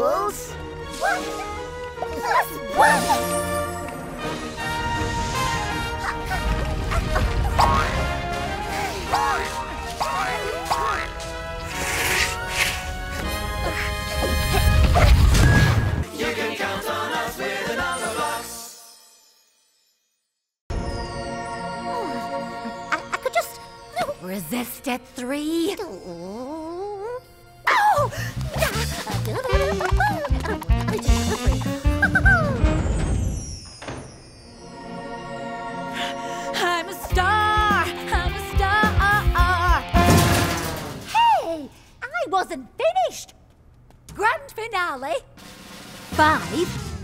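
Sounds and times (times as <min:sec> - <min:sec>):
cartoon soundtrack music: 0:00.0 - 0:18.9, 0:20.7 - 0:33.5, 0:34.6 - 0:41.2, 0:46.0 - 0:47.0
cartoon music: 0:01.0 - 0:03.9, 0:05.2 - 0:11.3, 0:26.1 - 0:33.0.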